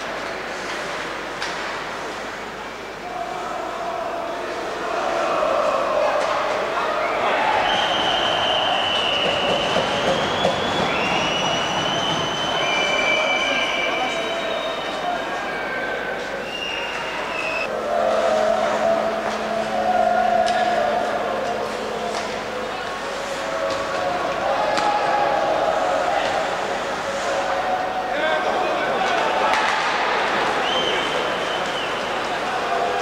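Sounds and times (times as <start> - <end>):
crowd voices: 0.0 - 33.0
hockey sticks and puck clacking: 0.1 - 1.8, 24.7 - 25.0, 29.1 - 30.4.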